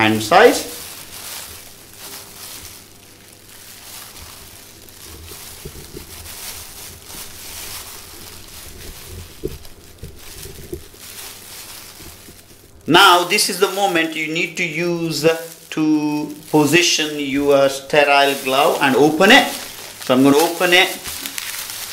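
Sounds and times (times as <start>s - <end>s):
plastic bag crinkling: 0.0s - 21.9s.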